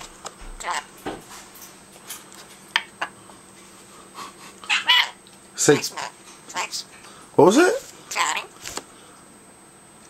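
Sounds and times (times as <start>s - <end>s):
parrot chattering calls: 0.6s - 0.9s, 4.6s - 6.9s, 8.1s - 8.5s.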